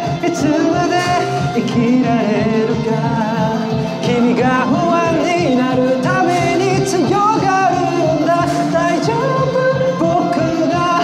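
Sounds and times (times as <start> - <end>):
karaoke backing track with beat: 0.0 - 11.0
man singing into microphone: 0.0 - 11.0.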